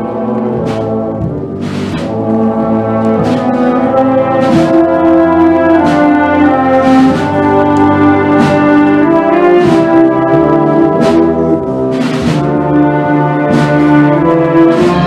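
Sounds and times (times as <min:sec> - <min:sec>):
concert band playing funeral march: 0:00.0 - 0:15.0
percussion strokes: 0:00.0 - 0:15.0.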